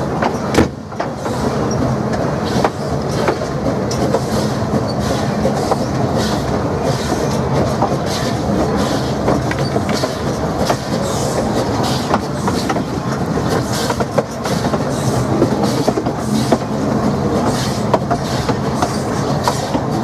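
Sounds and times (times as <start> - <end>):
steam locomotive exhaust beats: 0.0 - 20.0
wheels clanking on rails: 0.0 - 20.0.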